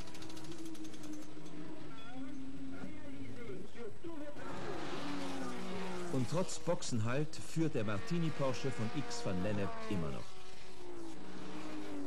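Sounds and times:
racing car engines at speed: 4.3s - 12.0s.

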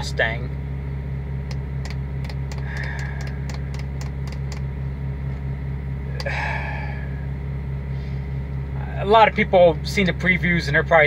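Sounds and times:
car engine idling: 0.0s - 11.0s
light irregular ticks: 1.5s - 4.6s.

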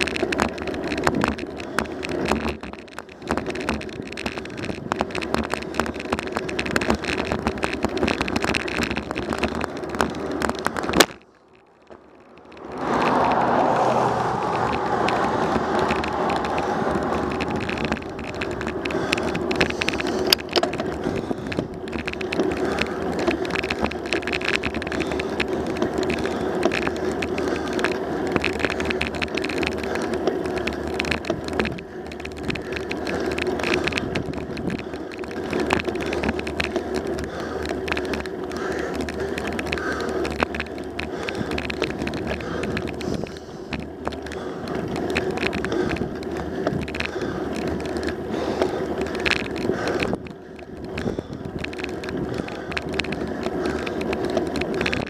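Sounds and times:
bicycle rattles and clicks: 0.0s - 55.0s
bicycle tyre noise: 0.0s - 55.0s
wind rushing over microphone: 12.0s - 29.9s, 30.5s - 55.0s.

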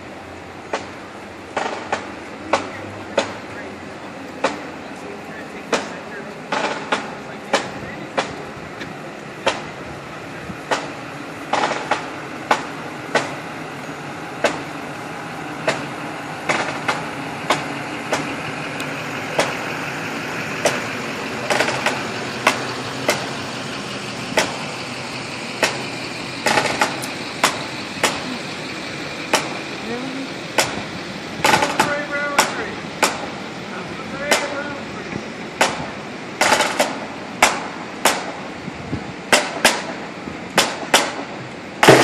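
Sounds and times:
truck engine running: 0.0s - 42.0s
sharp uneven strikes: 24.3s - 24.8s.

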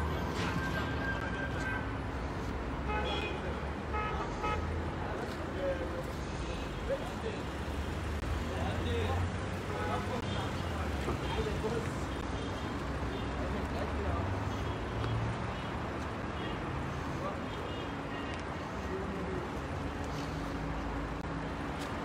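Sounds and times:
faint voices of passers-by: 0.0s - 22.0s
low traffic rumble: 0.0s - 22.0s.

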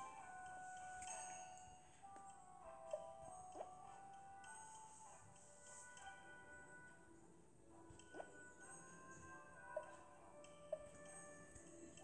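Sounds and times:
soft children's music: 0.0s - 12.0s.

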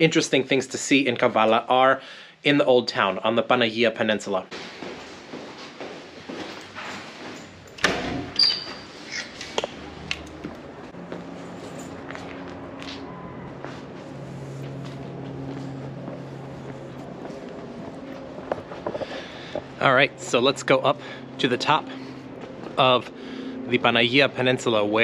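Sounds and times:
footsteps: 4.5s - 7.8s, 8.6s - 20.4s, 21.9s - 23.2s
door shutting: 7.8s - 9.8s
brief high squeak: 8.4s - 9.4s
steady low hum: 9.7s - 25.0s.

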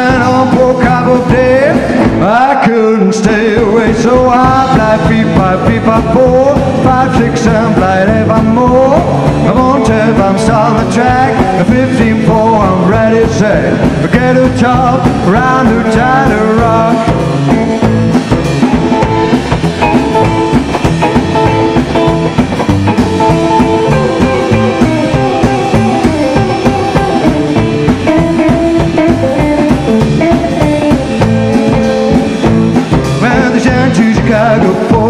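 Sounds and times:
upright double bass: 0.0s - 2.6s, 3.2s - 35.0s
drum kit beat: 0.0s - 35.0s
electric guitar lead: 0.0s - 35.0s.

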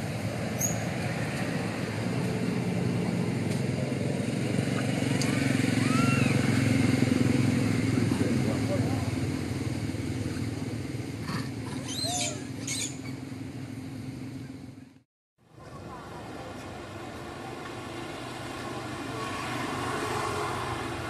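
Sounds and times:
vehicle engine running: 0.0s - 15.0s.

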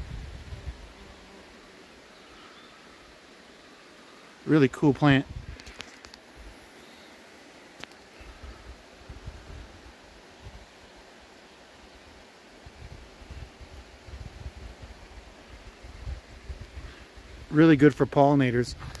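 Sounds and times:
wind buffeting microphone: 0.0s - 0.9s, 5.2s - 5.8s
faint steady hiss: 0.0s - 19.0s.

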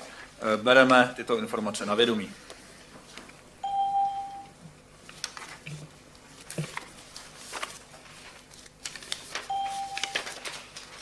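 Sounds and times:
paper rustling: 5.0s - 11.0s.

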